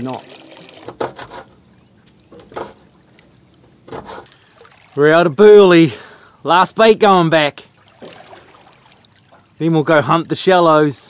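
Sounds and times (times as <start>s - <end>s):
water lapping against boat: 0.0s - 5.4s, 7.5s - 10.3s.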